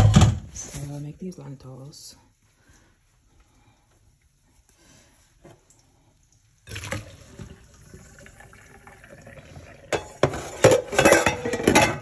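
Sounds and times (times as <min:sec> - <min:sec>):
water pouring into sink: 0:05.7 - 0:10.9.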